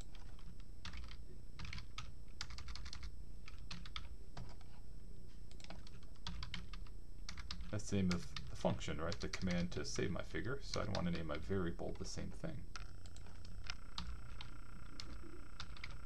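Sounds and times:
computer keyboard typing: 0.0s - 4.7s, 5.5s - 9.8s, 10.7s - 16.0s.

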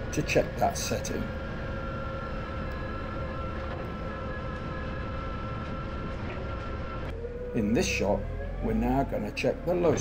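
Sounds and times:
forklift truck driving: 0.0s - 10.0s.

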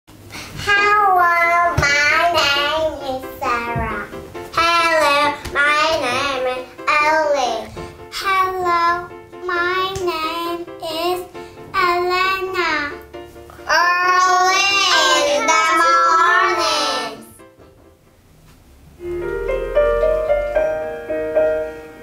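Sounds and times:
background music: 0.7s - 18.3s, 19.0s - 22.0s
children singing phrases: 13.6s - 17.4s.

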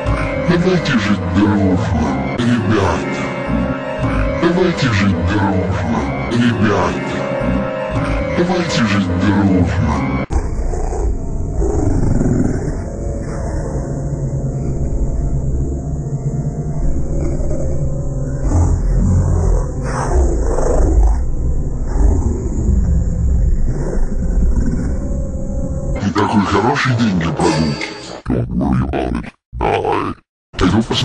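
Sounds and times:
deep roar-like sound: 0.0s - 26.0s.

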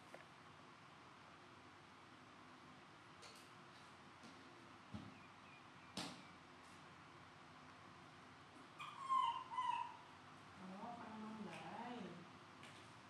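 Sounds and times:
baby monkey high-pitched call: 8.8s - 10.1s.

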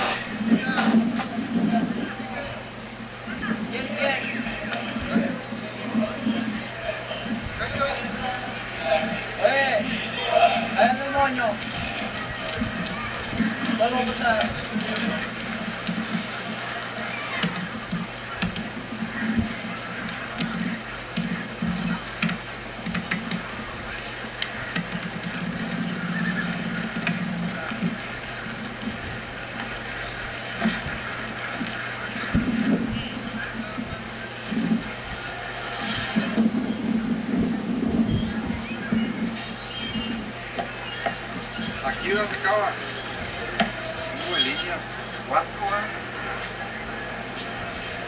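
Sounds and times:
indistinct background voices: 0.0s - 48.0s
steady low hum: 0.0s - 48.0s.

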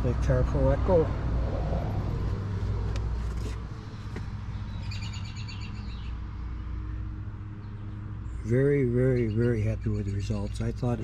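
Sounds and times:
bird chirping trill: 4.5s - 6.2s, 8.7s - 11.0s.

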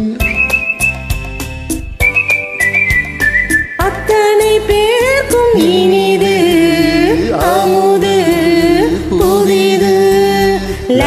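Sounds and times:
high whistled melody: 0.0s - 4.2s
karaoke backing track with drums: 0.0s - 11.0s.

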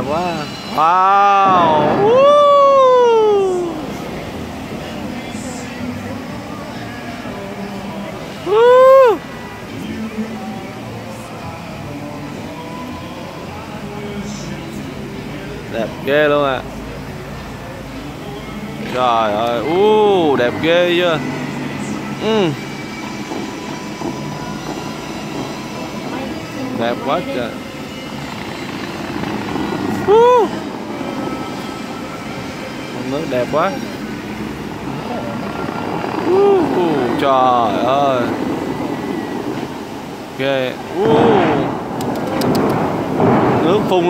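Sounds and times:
music: 0.0s - 40.2s
crowd chatter: 0.0s - 44.0s
fountain water jets spraying: 0.0s - 44.0s
person exclaiming: 0.9s - 3.9s, 8.4s - 9.2s, 30.0s - 30.6s, 36.2s - 37.1s.

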